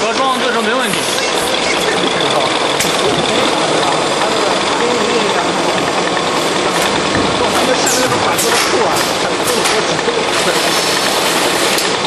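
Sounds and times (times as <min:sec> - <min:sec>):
packaging machinery running: 0:00.0 - 0:12.0.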